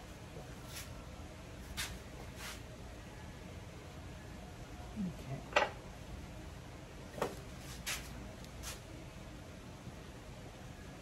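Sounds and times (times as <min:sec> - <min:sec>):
low steady background noise: 0:00.0 - 0:11.0.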